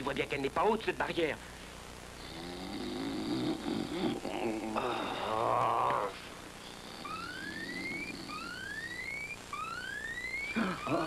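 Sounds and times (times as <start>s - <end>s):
whooping alarm: 6.8s - 11.0s
wavering cry: 7.0s - 11.0s.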